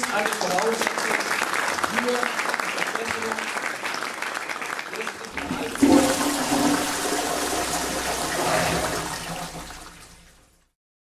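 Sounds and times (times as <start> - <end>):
crowd applause: 0.0 - 9.6.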